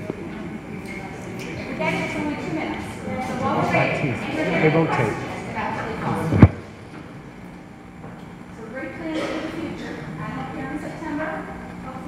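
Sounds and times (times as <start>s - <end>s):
loud sudden thump: 6.3s - 6.6s.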